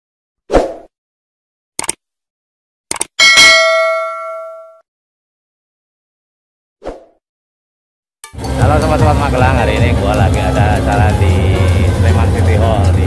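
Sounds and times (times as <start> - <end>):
quick clicks: 1.8 - 2.0, 2.9 - 3.2
bell-like ding: 3.2 - 4.8.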